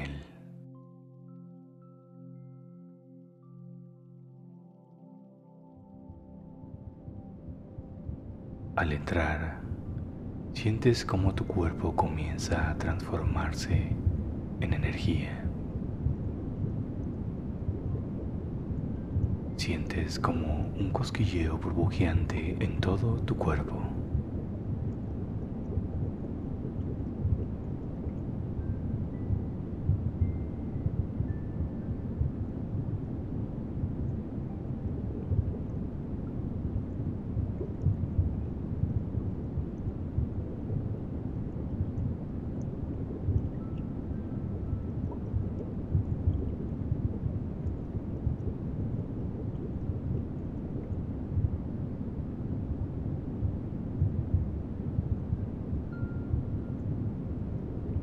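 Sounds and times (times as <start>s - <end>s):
low ambient rumble: 0.0s - 0.7s, 4.9s - 58.0s.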